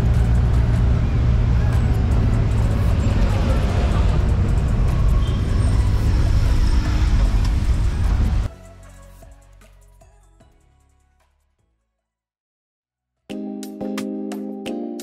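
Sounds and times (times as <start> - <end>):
road noise: 0.0 - 8.5
vehicle engine drone: 0.0 - 8.5.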